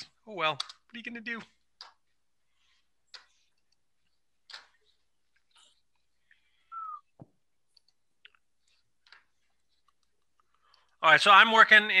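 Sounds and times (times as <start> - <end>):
falling tone: 6.7 - 7.0.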